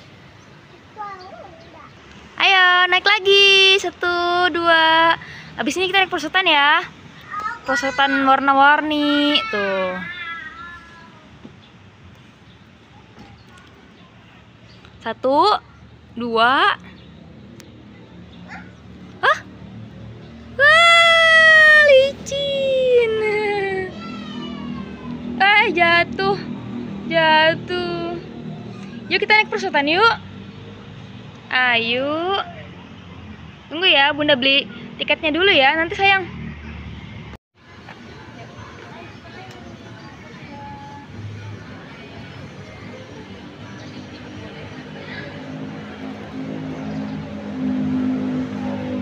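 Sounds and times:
distant indistinct voices: 0.0 - 37.0, 37.6 - 49.0
child whooping and squealing: 20.6 - 25.2.

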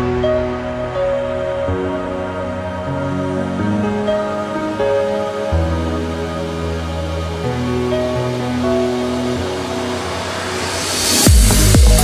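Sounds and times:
rising white-noise sweep: 0.0 - 12.0.

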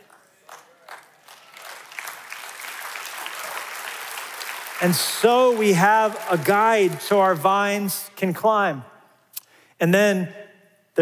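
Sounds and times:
audience applauding: 0.0 - 7.9.

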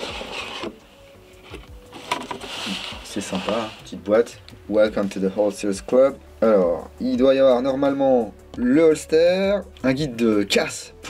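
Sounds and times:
cardboard rustling and scraping: 0.0 - 4.3.

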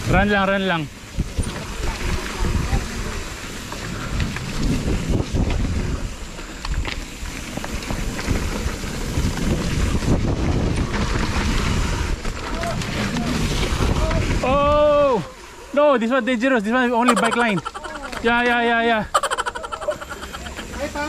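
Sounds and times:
bike tyres rolling over dirt: 0.0 - 21.0
wind buffeting microphone: 1.0 - 6.9, 7.5 - 15.2
bike rattling and knocking: 1.1 - 14.7.

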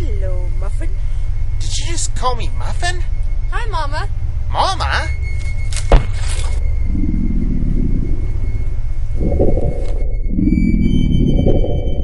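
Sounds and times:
horror film score: 0.0 - 12.0
low rumble: 0.0 - 12.0
low throbbing pulse: 0.0 - 12.0.

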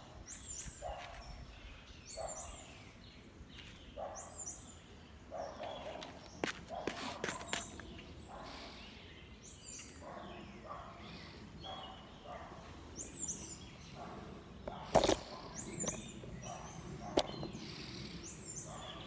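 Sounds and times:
faint outdoor background noise: 0.0 - 19.0
songbird singing: 0.0 - 19.0.

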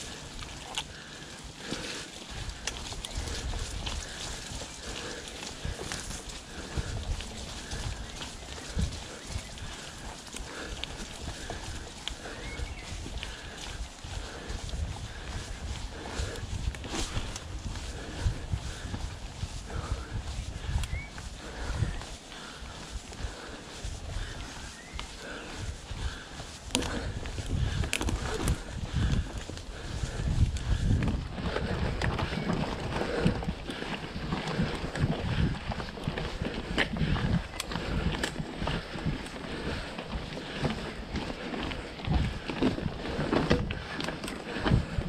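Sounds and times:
bike tyres on dirt trail: 0.0 - 45.0
rider breathing hard: 0.0 - 45.0
bike clicks knocks and rattles: 27.7 - 28.6.

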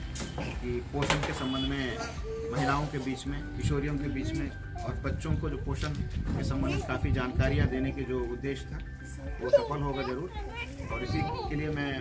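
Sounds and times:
children chattering and calling out: 2.0 - 3.2, 6.4 - 8.3, 9.0 - 12.0.

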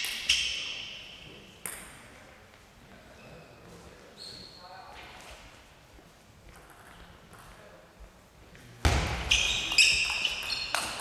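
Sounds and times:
table tennis ball bouncing: 8.9 - 11.0.

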